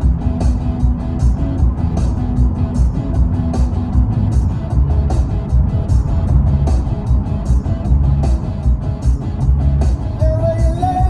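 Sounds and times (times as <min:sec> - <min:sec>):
bass-heavy music from car stereo: 0:00.0 - 0:11.0
road noise: 0:00.0 - 0:11.0.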